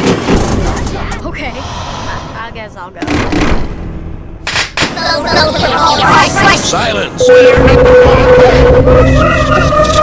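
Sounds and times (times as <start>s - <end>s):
cartoon soundtracks playing: 5.0s - 10.0s.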